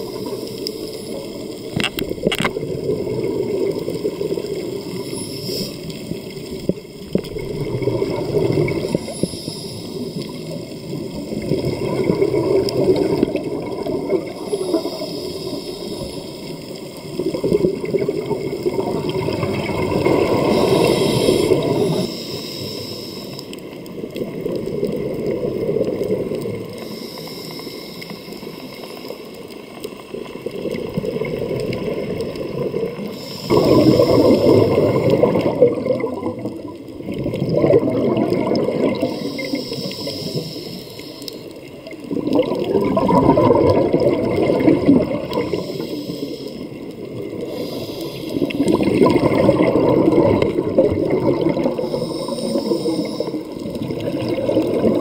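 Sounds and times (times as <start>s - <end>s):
underwater bubbles from regulator: 0.0s - 55.0s.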